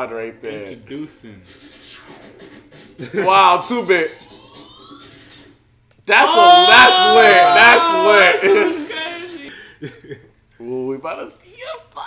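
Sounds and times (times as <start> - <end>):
rising multi-pitch tone: 4.0 - 5.6
man exclaiming: 6.1 - 9.6.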